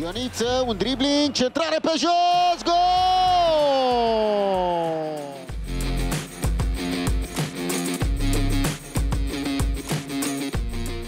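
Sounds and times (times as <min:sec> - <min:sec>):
commentator goal cry: 0:01.5 - 0:05.4
music with guitar and beat: 0:03.4 - 0:11.0.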